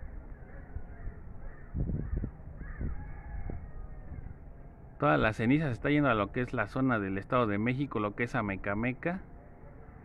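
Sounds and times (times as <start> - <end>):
birds calling: 0.0 - 4.4
low rumbling background noise: 0.0 - 10.0.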